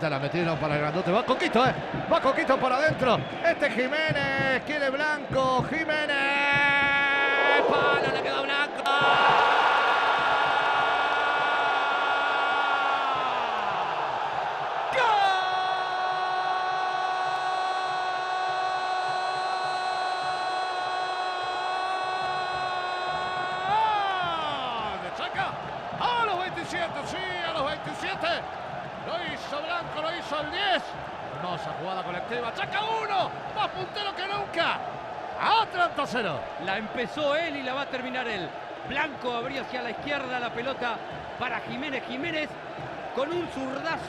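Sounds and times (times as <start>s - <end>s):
stadium crowd noise: 0.0s - 44.0s.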